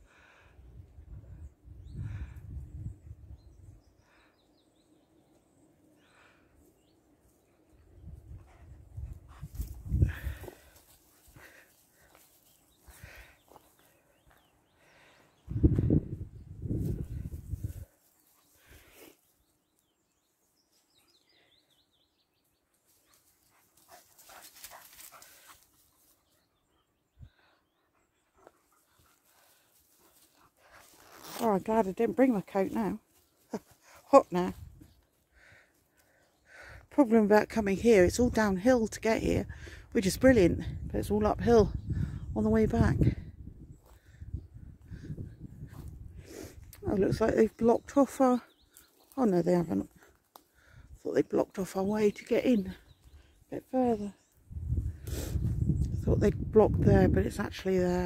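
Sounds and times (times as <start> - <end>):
low rumble on microphone: 40.3 - 47.2, 54.4 - 57.4.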